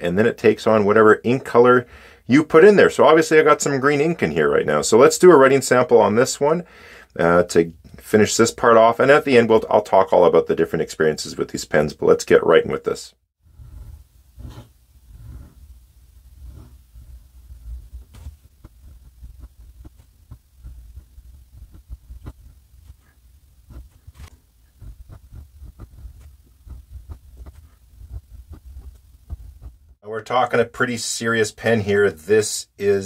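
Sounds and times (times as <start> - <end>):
pen nib scratching paper: 13.6 - 29.8.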